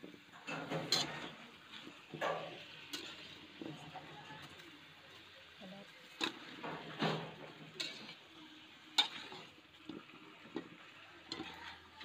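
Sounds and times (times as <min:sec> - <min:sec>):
faint frying sizzle: 0:00.0 - 0:12.0
metal spatula scraping a wok: 0:00.3 - 0:04.6, 0:06.1 - 0:09.6, 0:10.5 - 0:12.0.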